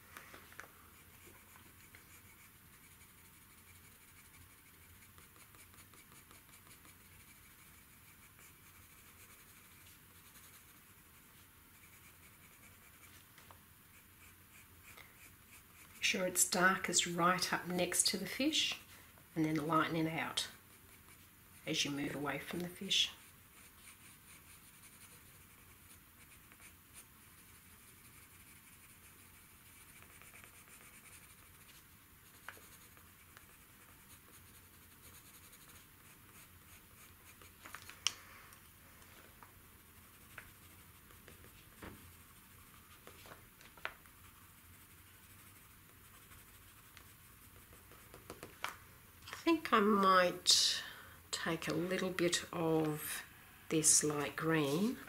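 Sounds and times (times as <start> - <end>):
pencil scratching on paper: 0.9 - 37.6, 39.7 - 48.5, 53.8 - 55.0.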